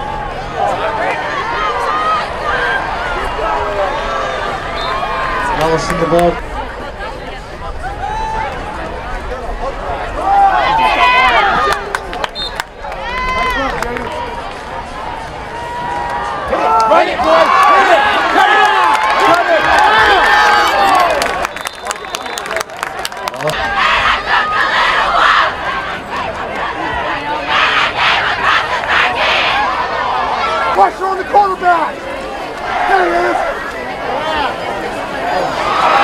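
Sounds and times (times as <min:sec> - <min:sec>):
football crowd cheering and yelling: 0:00.0 - 0:36.0.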